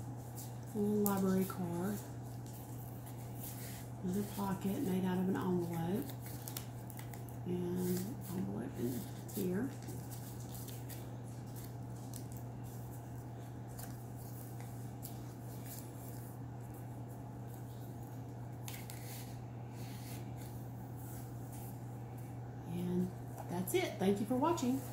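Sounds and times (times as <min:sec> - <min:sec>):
paper pages turning: 0:05.4 - 0:16.7.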